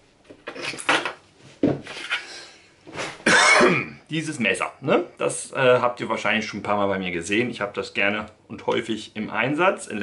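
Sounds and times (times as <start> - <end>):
man clearing his throat: 3.2 - 4.0.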